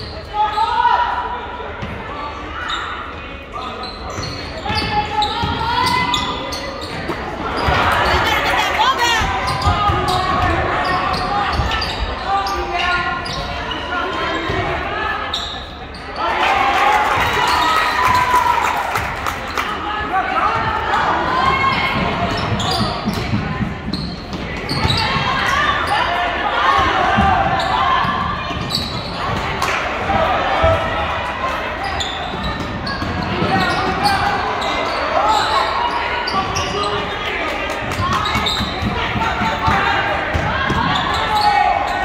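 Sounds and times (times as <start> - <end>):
people talking and shouting: 0.0 - 42.0.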